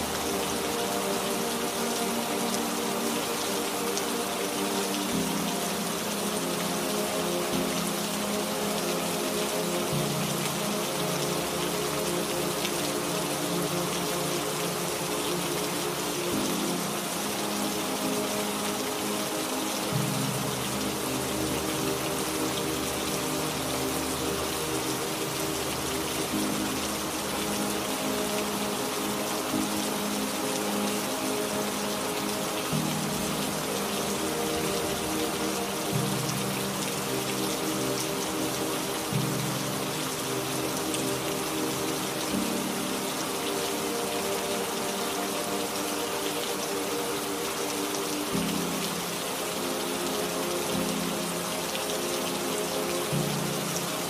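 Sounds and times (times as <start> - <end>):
steady rainfall: 0.0 - 54.0.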